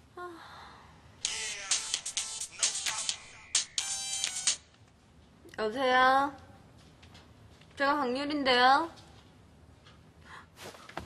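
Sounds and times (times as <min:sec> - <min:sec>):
electronic phone ringtone: 0:03.4 - 0:04.6.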